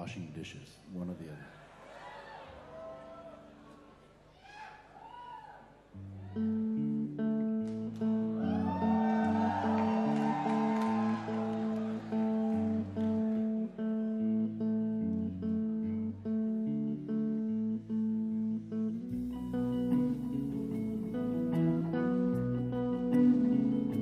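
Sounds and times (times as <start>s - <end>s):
guitar playing held notes: 6.0s - 24.0s
live rock band: 6.4s - 24.0s.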